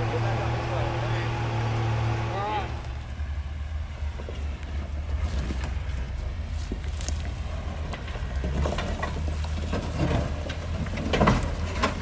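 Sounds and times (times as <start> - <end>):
off-road vehicle engine rumble: 0.0 - 12.0.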